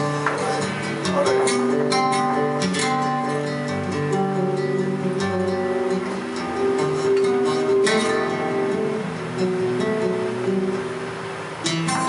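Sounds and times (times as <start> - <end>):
flamenco guitar strumming chords: 0.0 - 12.0.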